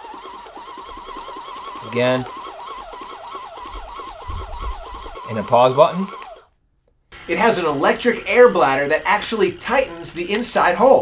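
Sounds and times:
faint rapid ticking: 0.0s - 6.5s
wavering electric motor whine: 0.0s - 6.5s, 7.2s - 11.0s.

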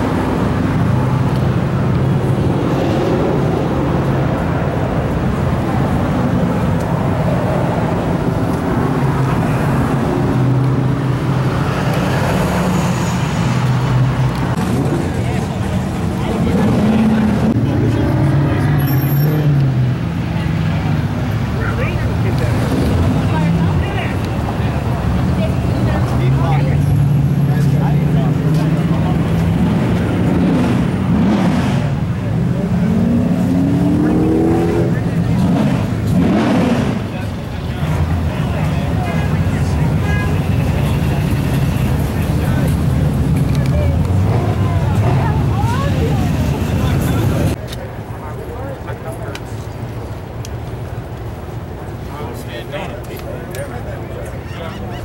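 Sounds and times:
car engines running: 0.0s - 55.0s.

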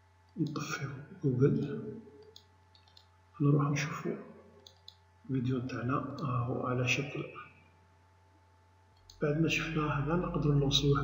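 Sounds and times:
man talking: 0.4s - 2.0s, 3.4s - 4.4s, 5.3s - 7.6s, 9.2s - 11.0s
computer mouse clicks: 2.2s - 3.1s, 4.6s - 5.0s.

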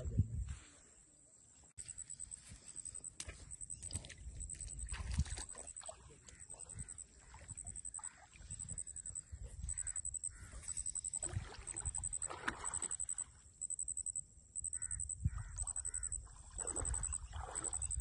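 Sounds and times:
bird calls: 1.8s - 12.2s, 12.8s - 18.0s
water sloshing around legs: 1.9s - 13.4s, 15.4s - 18.0s.

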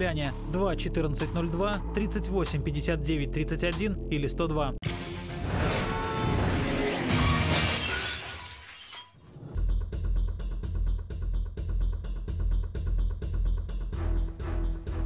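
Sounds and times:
shattering glass sound effect: 7.1s - 9.6s
fast beat music with heavy bass: 9.6s - 15.0s.

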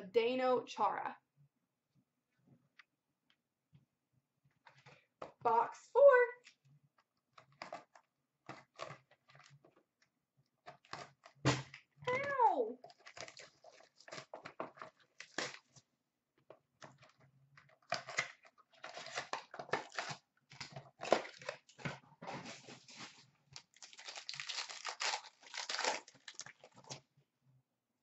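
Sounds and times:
foil wrappers tearing and crinkling: 12.8s - 15.8s, 17.8s - 27.0s.

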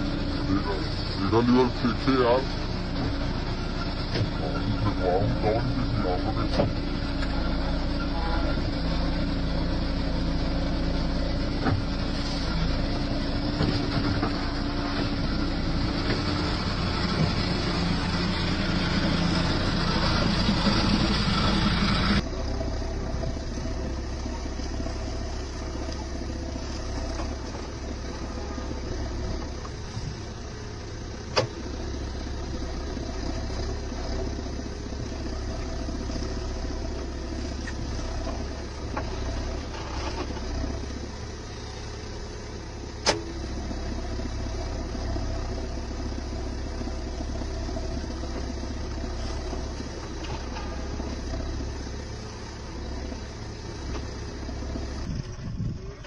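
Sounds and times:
diesel engine under load: 0.0s - 56.0s.

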